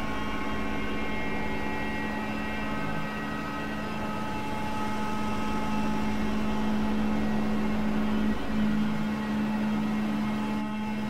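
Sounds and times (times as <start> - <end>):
experimental noise drone music: 0.0 - 11.0.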